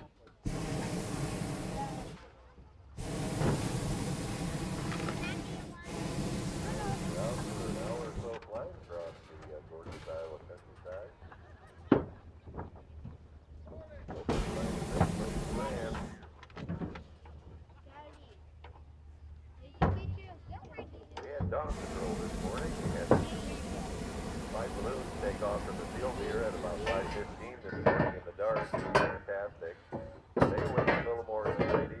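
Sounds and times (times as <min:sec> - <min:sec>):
propane burner roaring: 0:00.4 - 0:02.3, 0:03.0 - 0:08.5, 0:14.2 - 0:16.3, 0:21.6 - 0:29.2
faint voices: 0:00.9 - 0:11.3, 0:13.6 - 0:16.3, 0:20.4 - 0:32.0
person talking: 0:24.5 - 0:27.8.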